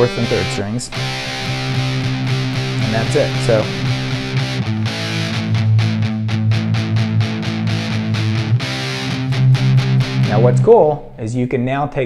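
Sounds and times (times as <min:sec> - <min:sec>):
distorted electric guitar power chords: 0:00.0 - 0:11.1.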